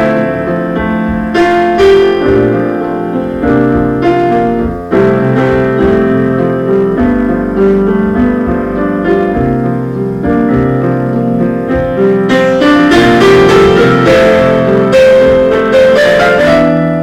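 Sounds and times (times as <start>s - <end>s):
low bass line: 0.0s - 15.7s
piano chords: 0.0s - 17.0s.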